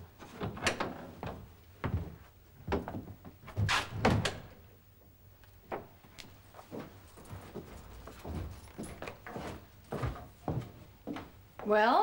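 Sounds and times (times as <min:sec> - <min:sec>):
door opening and shutting: 0:03.5 - 0:04.6.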